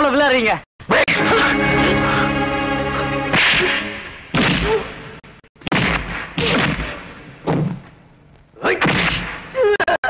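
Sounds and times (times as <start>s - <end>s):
low musical chord: 1.1s - 4.3s
punch whoosh sound effect: 3.3s - 4.8s.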